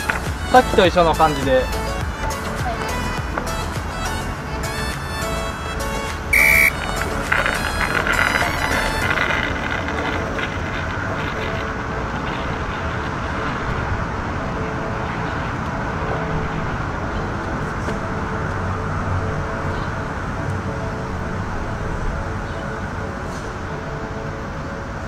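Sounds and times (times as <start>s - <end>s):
background music: 0.0s - 25.0s
short loud beep: 6.3s - 6.8s.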